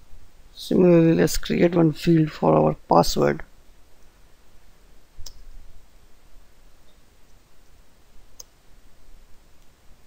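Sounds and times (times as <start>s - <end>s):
computer mouse clicks: 5.2s - 5.4s, 8.4s - 8.6s.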